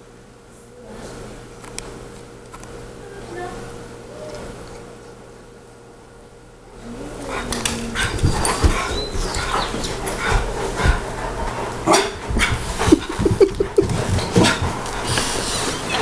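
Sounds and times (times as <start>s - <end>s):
dogs barking yipping and whining: 7.3s - 10.9s.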